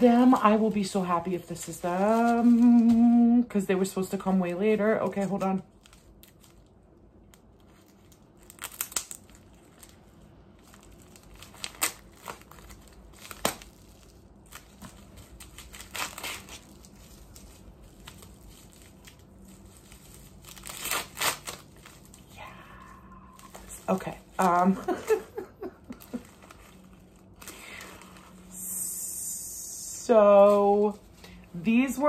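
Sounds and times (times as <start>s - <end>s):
envelope crinkling and tearing: 4.7s - 32.0s.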